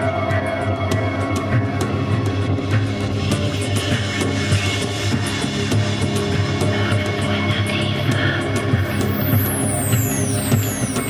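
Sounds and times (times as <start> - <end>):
pulsing synth drone: 0.0 - 11.0
high-pitched falling sweeps: 8.8 - 11.0.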